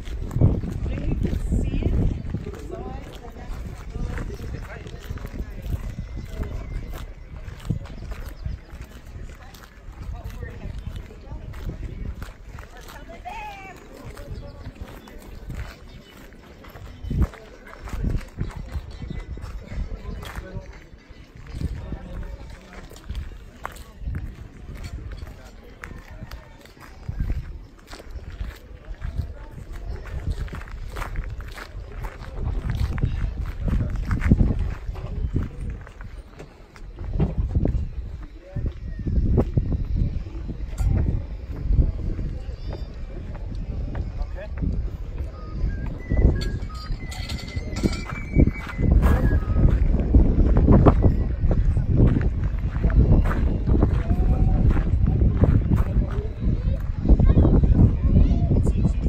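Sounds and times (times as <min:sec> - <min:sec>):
footsteps on gravel: 0:00.0 - 0:57.2
indistinct voices: 0:00.0 - 0:59.0
wind on microphone: 0:00.0 - 0:59.0.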